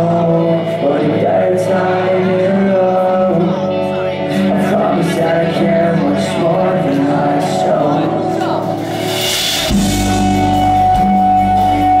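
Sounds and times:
electric guitar: 0:00.0 - 0:12.0
rock band playing live: 0:00.0 - 0:12.0.

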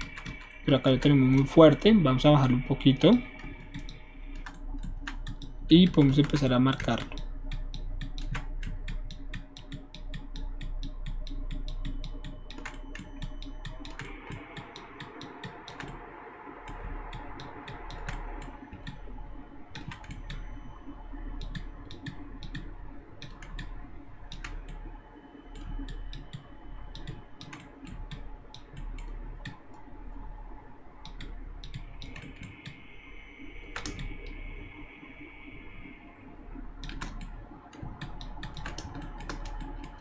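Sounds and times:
keyboard keys clicking: 0:00.0 - 0:01.8, 0:03.3 - 0:16.0, 0:19.7 - 0:20.4, 0:25.5 - 0:29.6, 0:31.0 - 0:32.8, 0:33.7 - 0:34.2, 0:36.8 - 0:40.0
low steady hum: 0:00.0 - 0:40.0.

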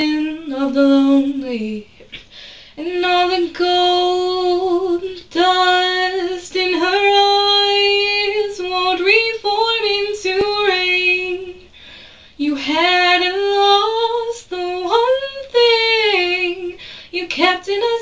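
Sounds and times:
woman singing a cappella: 0:00.0 - 0:18.0.

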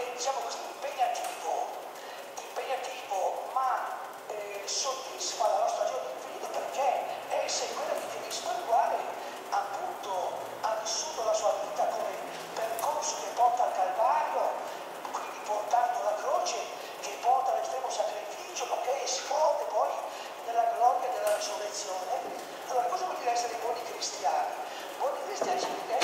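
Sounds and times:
wire strands snapping: 0:12.0 - 0:13.5, 0:21.0 - 0:22.6.

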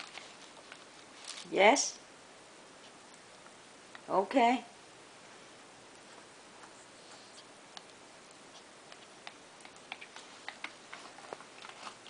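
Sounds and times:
plastic bag crinkling: 0:00.0 - 0:01.7.

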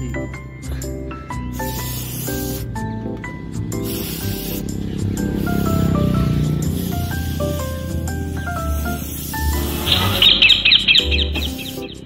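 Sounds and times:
background music: 0:00.0 - 0:12.0
aerosol spray hissing: 0:01.5 - 0:02.8, 0:03.6 - 0:12.0.

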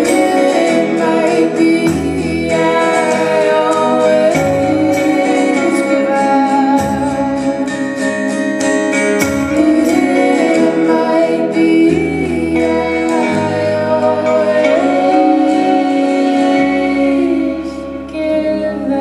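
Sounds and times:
drums with cymbals: 0:00.0 - 0:15.6
distorted guitars: 0:00.0 - 0:19.0
woman singing: 0:00.0 - 0:19.0.

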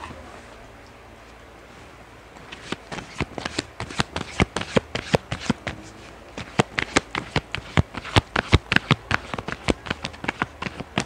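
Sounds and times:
cards being shuffled: 0:02.4 - 0:11.0.

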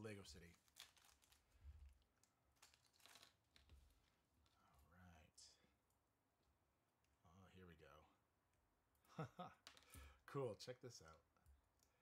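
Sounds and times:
plastic bag crinkling: 0:00.4 - 0:04.1.

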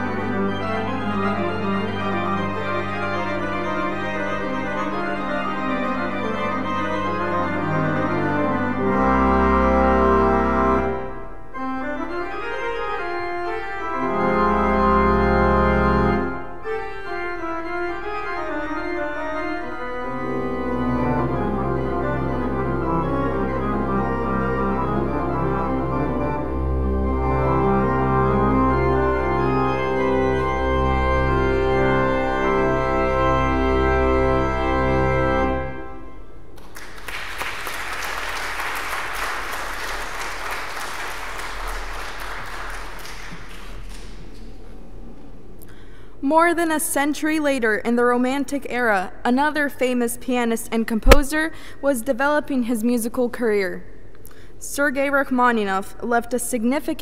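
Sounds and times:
pipe organ chords: 0:00.0 - 0:36.6
audience applause: 0:36.6 - 0:44.6.

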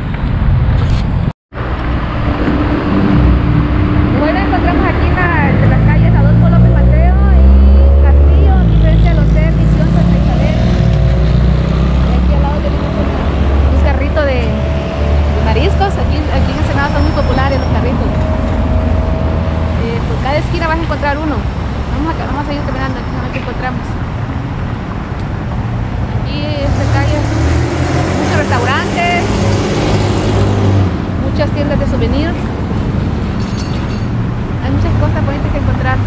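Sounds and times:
traffic rumble: 0:00.0 - 0:36.0
vehicle engine pulling away: 0:01.9 - 0:21.7
background voices: 0:04.0 - 0:24.1.

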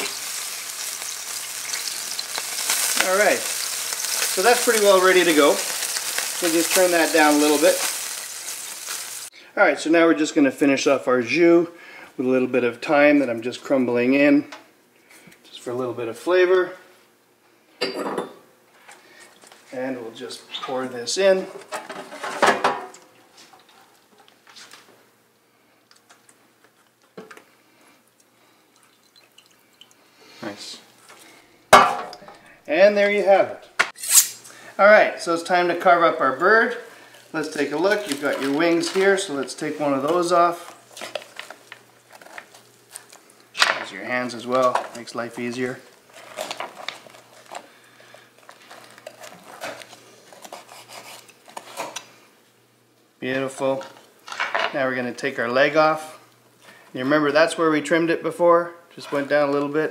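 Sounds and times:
knife scraping: 0:34.0 - 0:34.4, 0:49.1 - 0:52.0.

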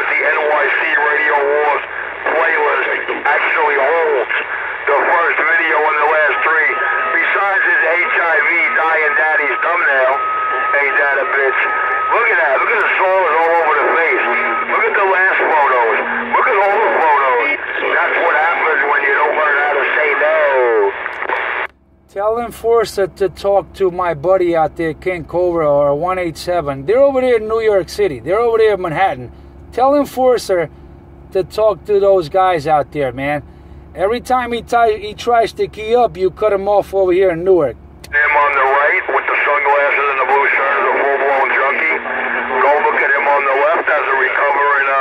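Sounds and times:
steady radio whistle: 0:00.0 - 0:21.7, 0:38.1 - 0:45.0
voices over radio speaker: 0:00.0 - 0:45.0.

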